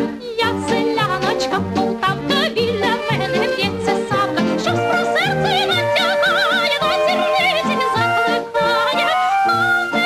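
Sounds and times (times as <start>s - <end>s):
light orchestral accompaniment: 0.0s - 10.0s
woman singing with vibrato: 0.0s - 10.0s.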